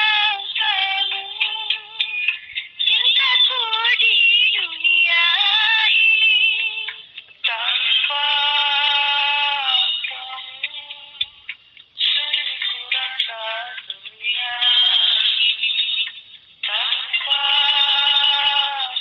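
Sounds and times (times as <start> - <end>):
high voice singing: 0.0 - 19.0.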